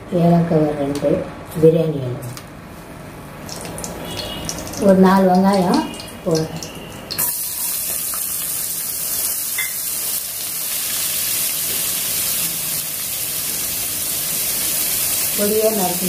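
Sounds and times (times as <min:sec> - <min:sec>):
onions sizzling in hot oil: 0:03.5 - 0:16.0.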